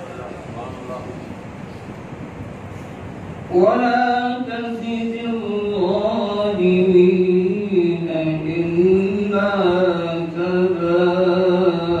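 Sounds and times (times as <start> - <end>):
man chanting melodically: 3.5 - 12.0.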